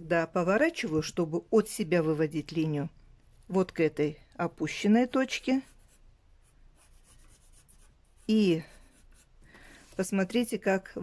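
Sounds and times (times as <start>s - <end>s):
pencil scratching on paper: 5.1s - 9.4s.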